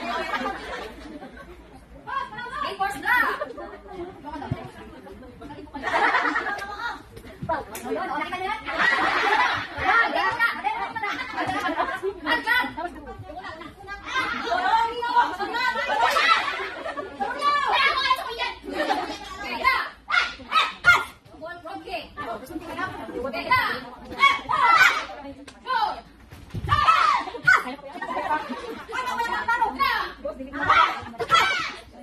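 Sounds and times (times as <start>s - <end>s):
people talking: 0.0s - 26.1s, 26.7s - 32.0s
shrill shouts: 26.7s - 27.7s.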